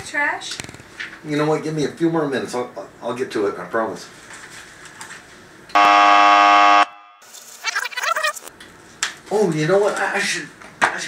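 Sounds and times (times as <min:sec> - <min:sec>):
harsh wrong answer buzzer: 0:05.8 - 0:07.2.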